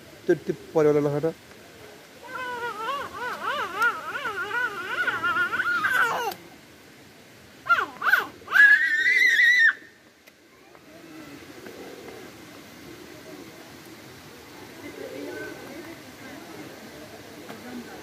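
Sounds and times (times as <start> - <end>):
toddler babbling: 2.2 - 6.4
toddler squealing and shrieking: 2.2 - 6.4, 7.7 - 9.9.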